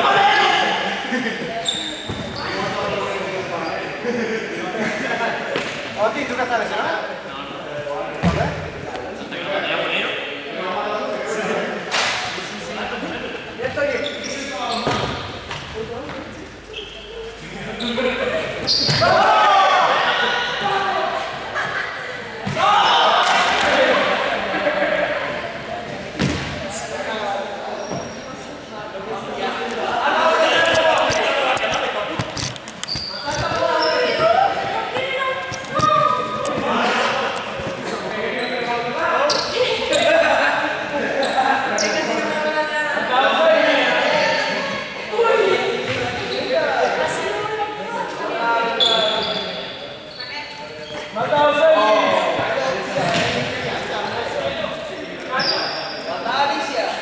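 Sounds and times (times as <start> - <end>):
teenagers' voices echoing: 0.0 - 57.0
sneaker squeaks: 1.5 - 4.0, 13.6 - 19.3, 26.1 - 28.6, 32.0 - 40.2, 41.1 - 42.4, 45.8 - 47.3, 48.6 - 54.4, 55.2 - 56.3
players shouting: 16.8 - 25.8.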